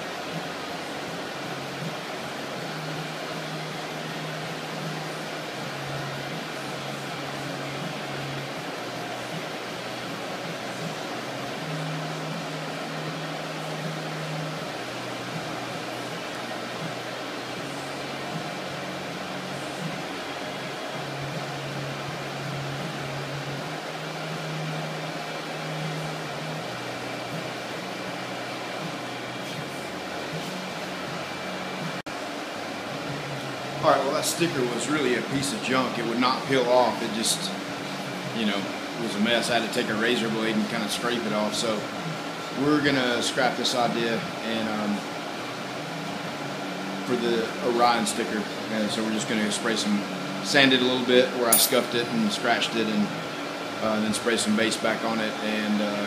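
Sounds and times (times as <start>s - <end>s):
exhaust fans rushing and humming: 0.0s - 56.0s.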